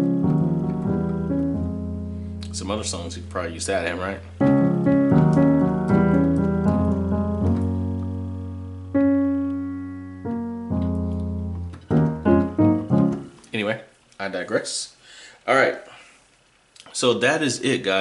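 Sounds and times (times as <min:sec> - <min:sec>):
digital piano gospel chords: 0:00.0 - 0:13.8.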